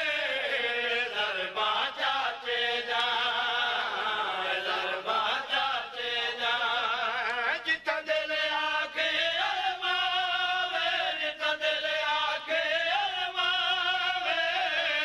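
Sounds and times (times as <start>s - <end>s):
men chanting in chorus: 0.0s - 15.0s.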